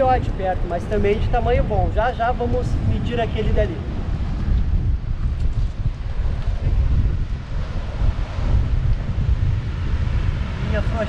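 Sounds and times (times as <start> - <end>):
rough sea surf breaking: 0.0 - 11.0
wind buffeting microphone: 0.0 - 11.0.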